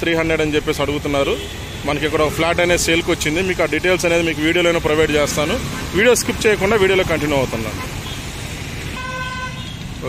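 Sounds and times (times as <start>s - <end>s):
road traffic passing: 0.0s - 10.0s
vehicle horn toot: 9.0s - 9.8s.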